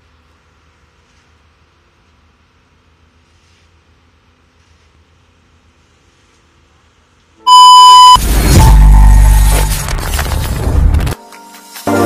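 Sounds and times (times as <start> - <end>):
loud electronic beep: 7.5 - 9.9.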